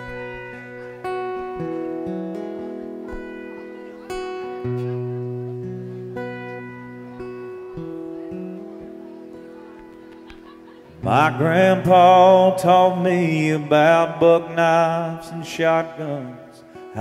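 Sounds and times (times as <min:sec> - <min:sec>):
acoustic guitar chords: 0:00.0 - 0:17.0.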